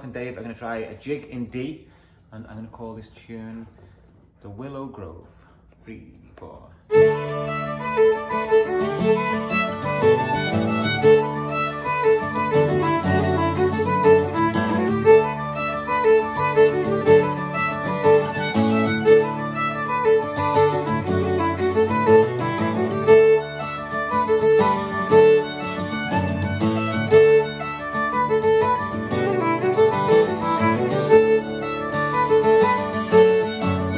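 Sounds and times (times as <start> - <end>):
acoustic guitar strumming: 6.9 - 33.9
fiddle melody: 6.9 - 33.9.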